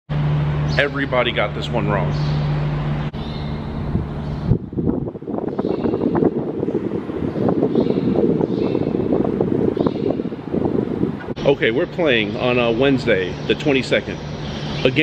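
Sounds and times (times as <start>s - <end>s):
steady low hum: 0.1s - 15.0s
wind buffeting microphone: 3.1s - 15.0s.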